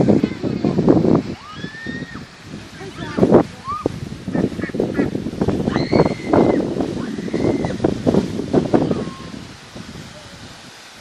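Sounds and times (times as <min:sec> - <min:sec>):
ducks quacking: 0:04.3 - 0:05.2
high-pitched duck calls: 0:04.3 - 0:05.2.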